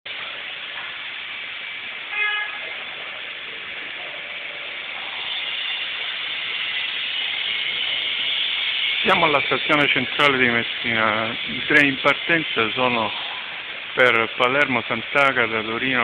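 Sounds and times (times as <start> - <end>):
railway station hiss: 0.1 - 16.0
short horn toot: 2.1 - 2.7.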